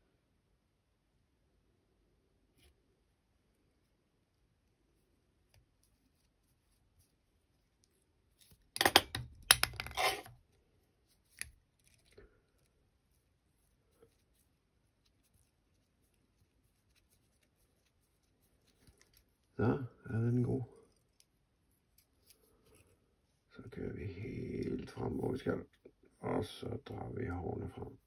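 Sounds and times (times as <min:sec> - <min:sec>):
clicks and crackles of handling: 0:07.8 - 0:10.4, 0:11.1 - 0:12.8, 0:16.9 - 0:19.6.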